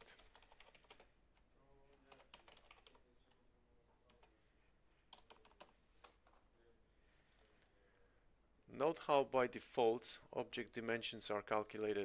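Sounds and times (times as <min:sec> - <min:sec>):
keyboard typing: 0:00.0 - 0:03.4, 0:05.1 - 0:06.4.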